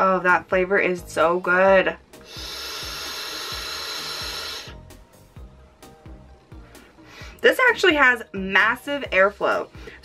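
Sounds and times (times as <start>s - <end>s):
airy hiss of vape draw: 2.2s - 5.0s.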